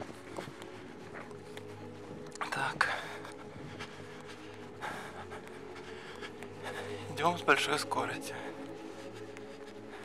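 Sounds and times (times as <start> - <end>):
footsteps on dirt road: 0.0 - 10.0
person breathing hard: 2.8 - 7.2, 8.3 - 10.0.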